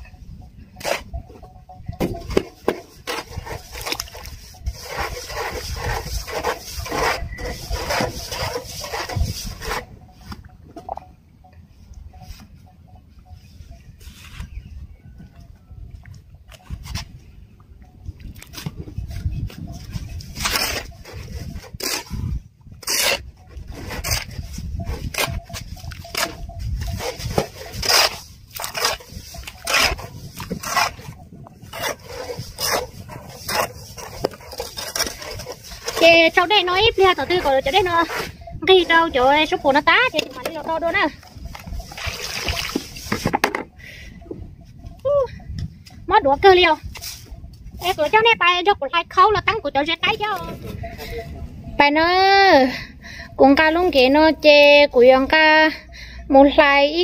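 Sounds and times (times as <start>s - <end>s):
shovel scraping wet cement: 0.8s - 1.1s, 2.0s - 10.4s, 18.5s - 43.3s.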